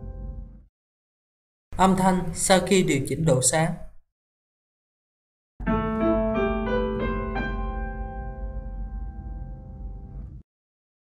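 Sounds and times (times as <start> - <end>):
digital piano notes: 5.6 - 10.3.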